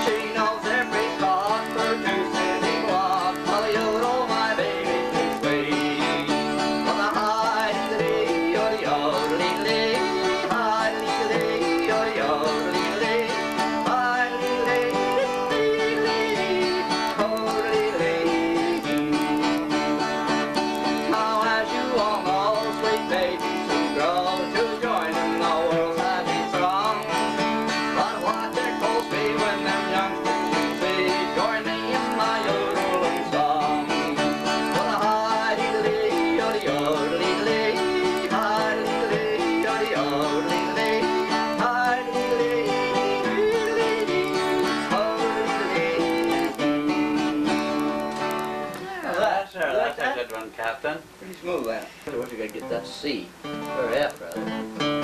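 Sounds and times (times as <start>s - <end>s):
acoustic guitars playing: 0.0s - 55.0s.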